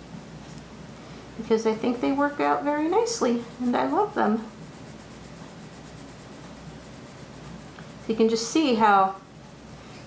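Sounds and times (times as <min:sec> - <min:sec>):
pencil scratching on paper: 0:01.9 - 0:08.8.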